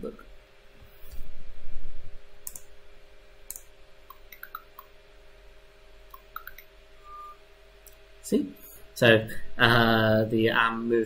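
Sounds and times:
sharp clicks: 0:02.4 - 0:02.7, 0:03.5 - 0:04.9, 0:06.1 - 0:06.7.

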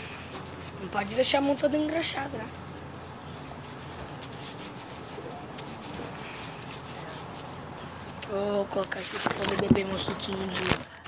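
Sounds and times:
low background noise: 0:00.0 - 0:11.0
paper napkin rustling: 0:00.0 - 0:11.0.

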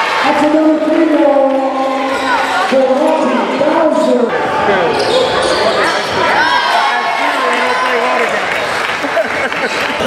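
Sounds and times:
shoe squeak: 0:04.9 - 0:06.3
people shouting: 0:05.4 - 0:08.2.

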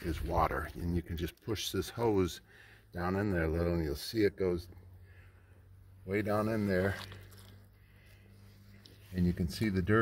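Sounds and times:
water squelching and trickling in soil: 0:00.0 - 0:02.4, 0:06.1 - 0:10.0.

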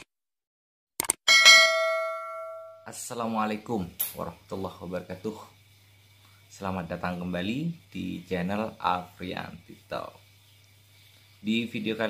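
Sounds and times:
notification bell ding: 0:01.3 - 0:02.8.

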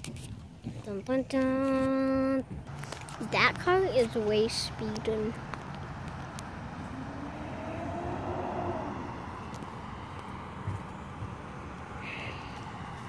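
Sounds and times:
car driving by: 0:02.7 - 0:13.0.

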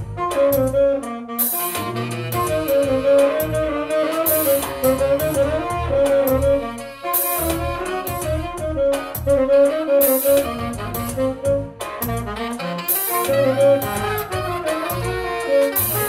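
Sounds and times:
bass and drums backing track: 0:00.0 - 0:16.0
saxophone melody: 0:00.0 - 0:16.0.

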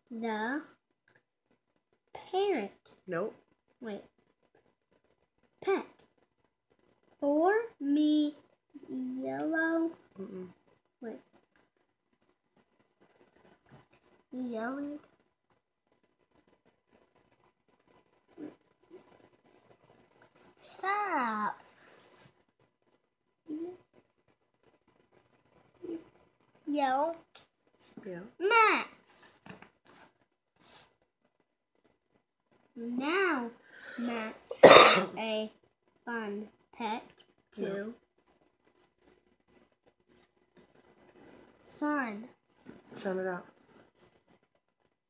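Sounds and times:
faint soft rustles: 0:00.6 - 0:34.5, 0:35.5 - 0:45.0
quiet vocal sounds: 0:08.7 - 0:11.3, 0:25.7 - 0:26.2.

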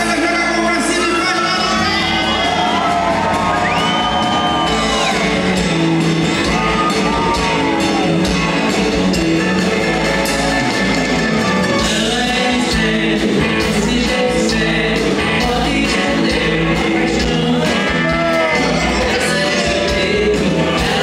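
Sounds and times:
live band playing: 0:00.0 - 0:21.0
crowd shouting and whooping: 0:00.1 - 0:09.2, 0:17.6 - 0:21.0.

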